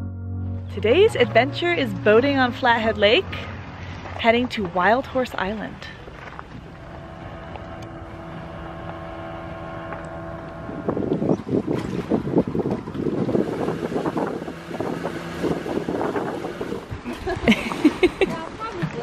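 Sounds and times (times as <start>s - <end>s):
boat motor running: 0.0s - 19.0s
wind buffeting microphone: 0.8s - 19.0s.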